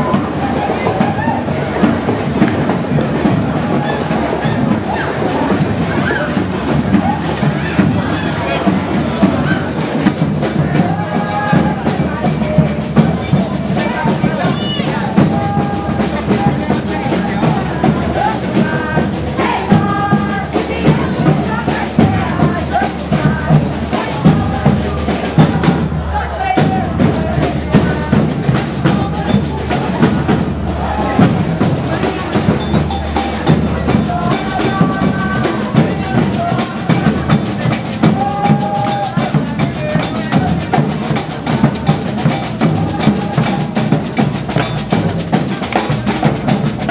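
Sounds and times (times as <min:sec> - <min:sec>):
drum band playing dance beat: 0:00.0 - 0:46.9.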